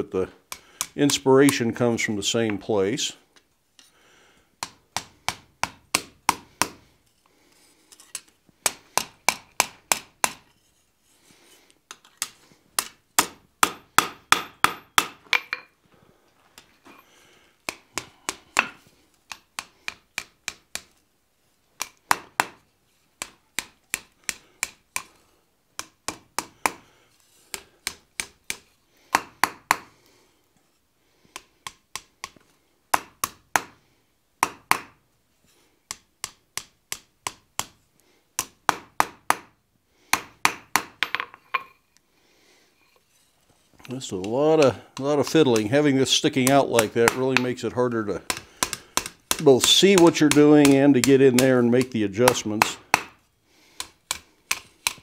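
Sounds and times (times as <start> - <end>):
hammer striking hot bar on anvil: 12.8 - 15.6.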